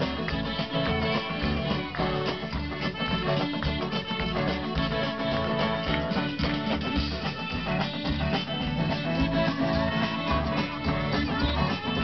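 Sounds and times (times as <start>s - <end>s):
guitar: 0.0s - 12.0s
live band playing fast song: 0.0s - 12.0s.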